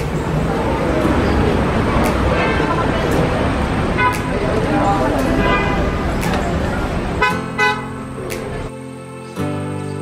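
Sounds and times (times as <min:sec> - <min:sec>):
crowd chatter: 0:00.0 - 0:08.7.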